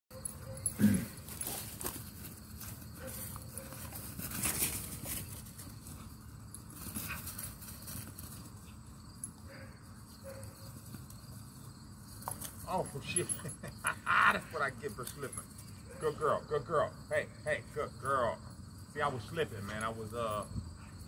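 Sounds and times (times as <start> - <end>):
dog scuffling and thudding on grass: 1.2 - 8.7
dog barking: 9.5 - 10.6.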